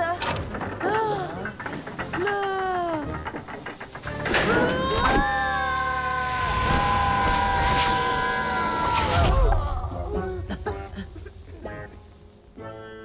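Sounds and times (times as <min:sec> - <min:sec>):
low rumble: 0:00.4 - 0:12.6
cartoon boys screaming: 0:04.4 - 0:10.5.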